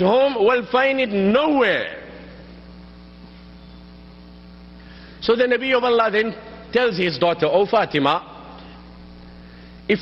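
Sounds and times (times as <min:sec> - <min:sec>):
electrical mains hum: 0:00.0 - 0:10.0
faint hiss: 0:01.5 - 0:10.0.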